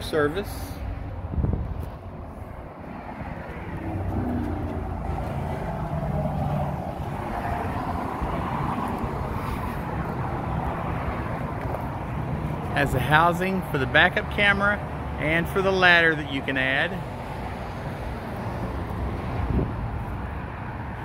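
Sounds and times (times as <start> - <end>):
passing motor vehicle: 0.0 - 14.1, 17.0 - 21.0.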